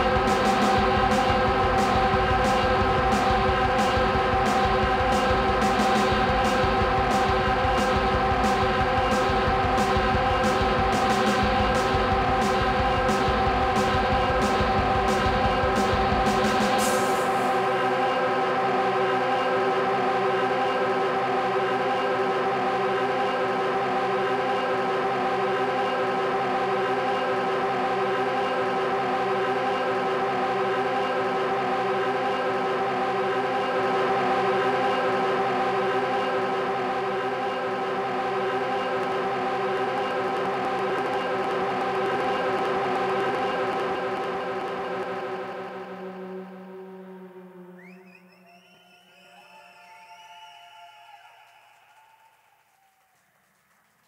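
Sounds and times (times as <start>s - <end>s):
band playing droning chord: 0.0s - 48.5s.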